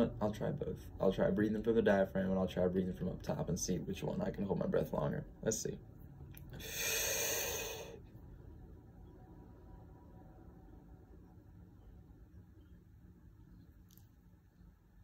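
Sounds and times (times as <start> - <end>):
faint room hum: 0.0 - 15.0
man's deep breath in: 6.6 - 8.0.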